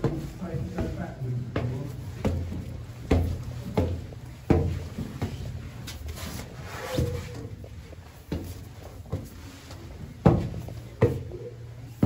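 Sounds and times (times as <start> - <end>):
footsteps on stone stairs: 0.0 - 12.0.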